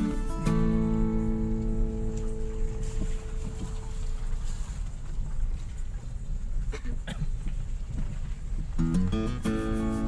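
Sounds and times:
car rumbling over rough road: 0:00.0 - 0:09.7.

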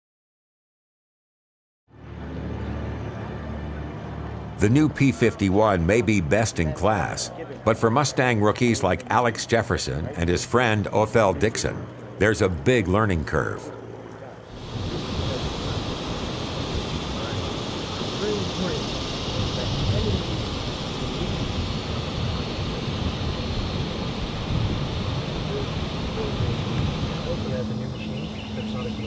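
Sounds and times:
low hum: 0:01.9 - 0:29.0
far-off voices: 0:03.0 - 0:29.0.

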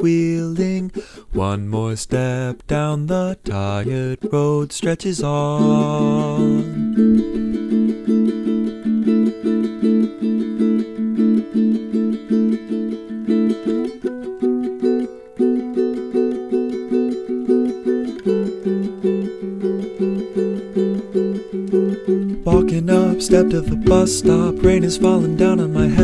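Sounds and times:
plucked string instrument strumming: 0:00.0 - 0:26.0.

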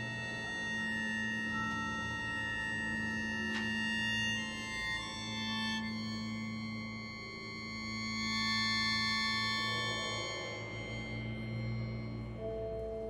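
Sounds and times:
sheng and orchestra sustained chords: 0:00.0 - 0:13.0.

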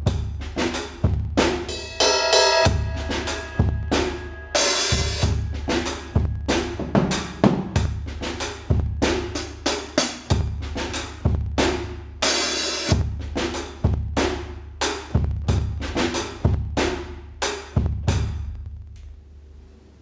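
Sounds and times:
drum kit groove: 0:00.0 - 0:18.5
cymbal crash: 0:01.4 - 0:09.6.

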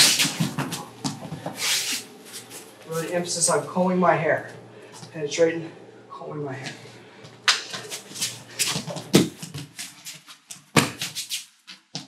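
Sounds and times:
bodies scuffing on a wrestling mat: 0:00.0 - 0:03.2, 0:07.7 - 0:12.0.

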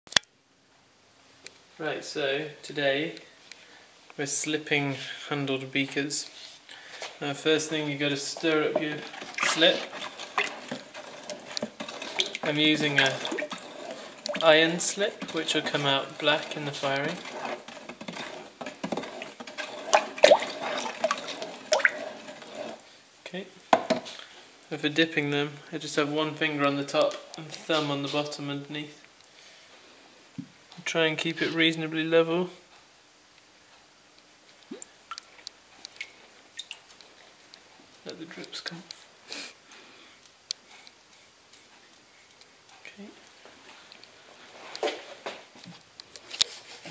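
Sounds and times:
liquid bloop: 0:07.6 - 0:22.9, 0:34.6 - 0:37.0
small drips and splashes: 0:08.4 - 0:17.6, 0:19.0 - 0:22.9, 0:34.6 - 0:37.6.

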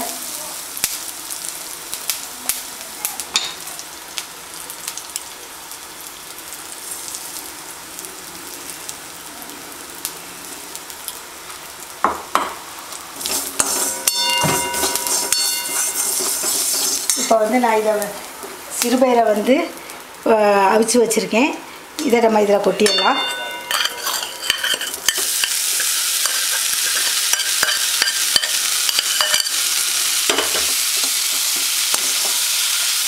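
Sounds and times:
seeds sizzling in hot oil: 0:00.0 - 0:33.0
steel ladle scraping a pan: 0:13.2 - 0:17.4, 0:22.9 - 0:33.0.

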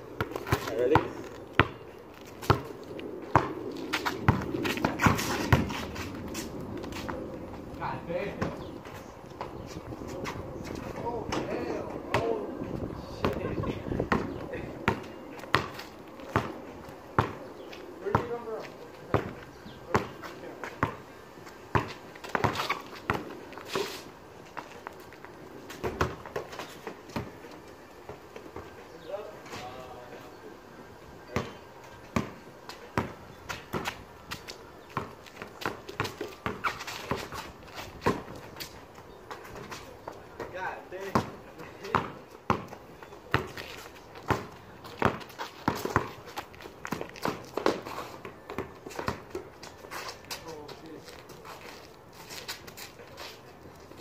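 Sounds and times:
basketball bouncing on concrete: 0:00.2 - 0:01.8, 0:02.4 - 0:02.7, 0:03.3 - 0:05.7, 0:11.3 - 0:12.4, 0:13.2 - 0:16.6, 0:17.2 - 0:17.4, 0:18.0 - 0:21.0, 0:21.7 - 0:23.3, 0:25.8 - 0:26.6, 0:31.3 - 0:32.4, 0:33.0 - 0:34.0, 0:34.9 - 0:37.4, 0:38.0 - 0:38.4, 0:40.4 - 0:43.6, 0:44.2 - 0:49.5.

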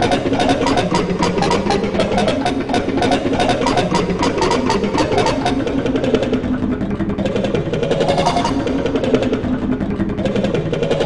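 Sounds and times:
fast stuttering rattle: 0:00.0 - 0:11.0.

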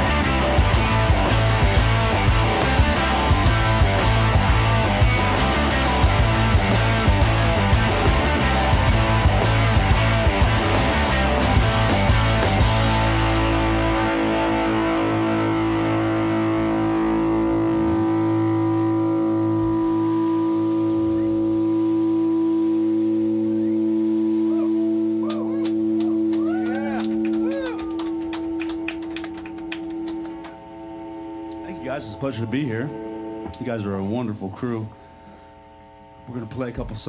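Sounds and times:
electric guitar and bass chord: 0:00.0 - 0:37.0
short whoops: 0:23.6 - 0:28.2
people clapping: 0:25.2 - 0:30.7.

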